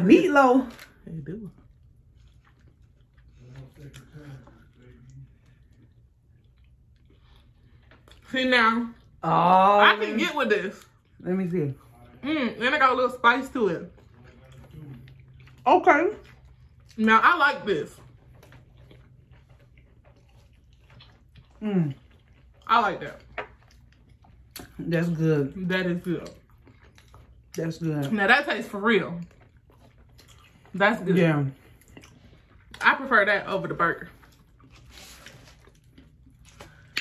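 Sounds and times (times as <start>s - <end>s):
person chewing: 1.6s - 8.3s, 13.8s - 17.0s, 17.9s - 25.0s, 26.0s - 28.2s, 29.1s - 32.8s, 34.1s - 37.0s.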